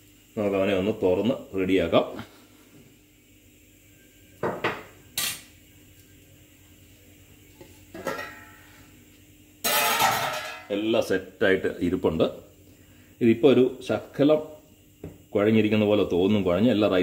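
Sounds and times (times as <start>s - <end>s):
pot lid clinking: 8.0s - 8.6s.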